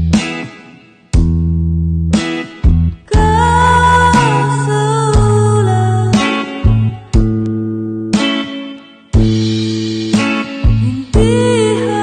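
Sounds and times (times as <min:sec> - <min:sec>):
guitar chords ringing: 0:00.0 - 0:12.0.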